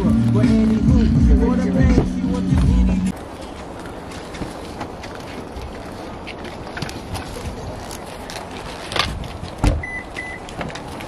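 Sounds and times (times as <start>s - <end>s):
car lock chirp beeps: 9.8s - 10.5s.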